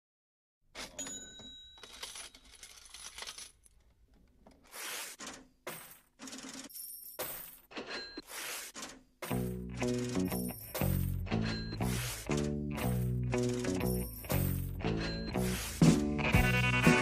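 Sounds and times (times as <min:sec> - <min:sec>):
coins dropping and clinking: 0:00.8 - 0:03.8, 0:04.7 - 0:15.8.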